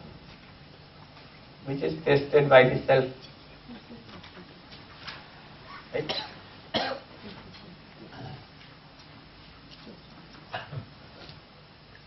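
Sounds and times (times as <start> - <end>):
person coughing: 6.1 - 7.1, 10.5 - 10.9.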